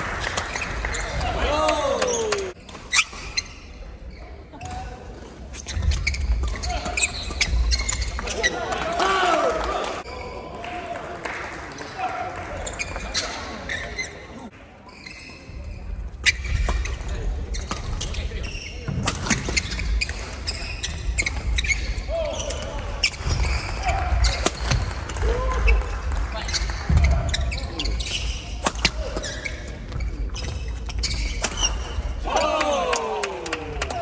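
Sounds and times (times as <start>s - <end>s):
rackets hitting shuttlecock: 18.9s - 20.6s, 22.4s - 25.9s, 28.0s - 29.5s, 30.4s - 32.2s.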